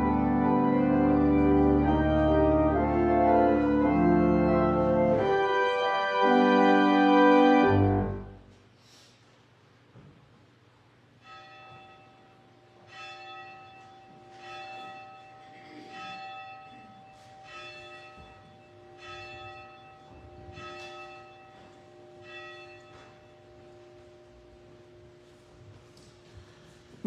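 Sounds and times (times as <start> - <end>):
church bell tolling: 0.0 - 8.4, 11.2 - 26.3.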